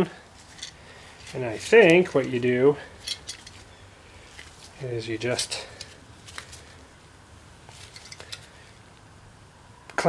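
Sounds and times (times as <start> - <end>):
metal tool parts clicking: 3.0 - 3.6, 7.8 - 8.5.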